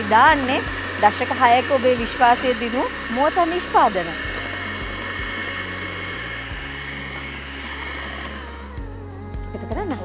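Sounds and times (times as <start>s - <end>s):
electric hand mixer whipping batter: 0.0s - 10.0s.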